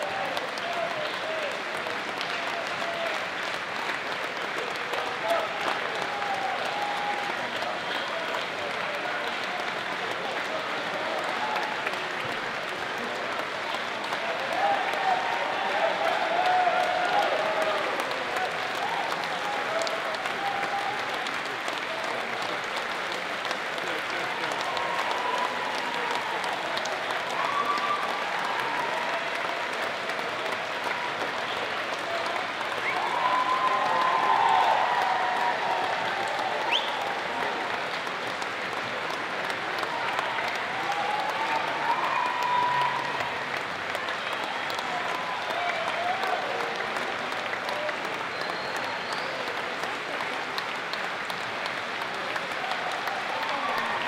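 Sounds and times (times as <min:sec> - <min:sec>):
audience applause: 0:00.0 - 0:54.0.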